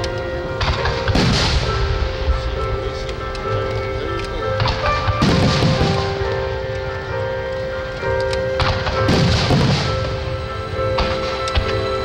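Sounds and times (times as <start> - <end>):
music: 0.0 - 12.0
fireworks booming and crackling: 0.4 - 7.2, 8.2 - 12.0.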